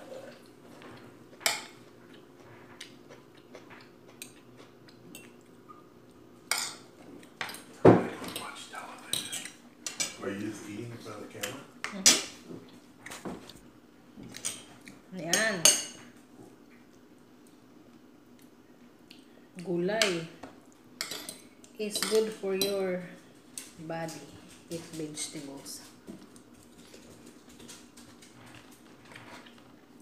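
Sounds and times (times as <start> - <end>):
cutlery clinking and scraping on dish: 7.4 - 10.2
cutlery clinking on a dish: 9.1 - 10.2, 21.0 - 21.4.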